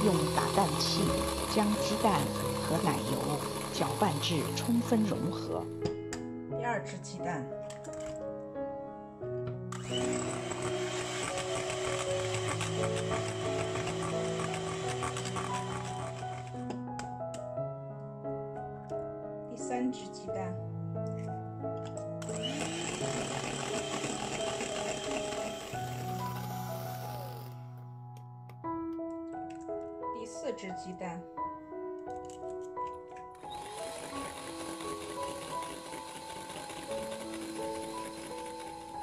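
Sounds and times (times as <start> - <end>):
electric hand mixer running: 0.0 - 5.7, 9.7 - 16.8, 22.2 - 27.7, 33.4 - 39.0
background music: 0.0 - 39.0.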